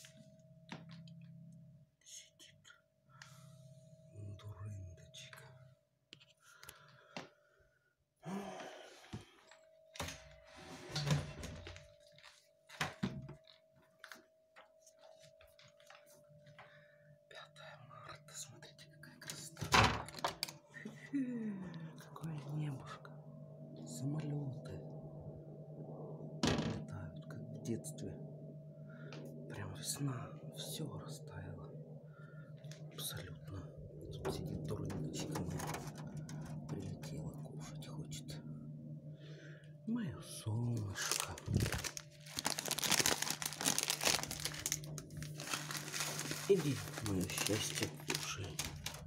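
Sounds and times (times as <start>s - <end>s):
faint steady hum: 0.0s - 49.0s
plastic bag crinkling: 40.8s - 49.0s.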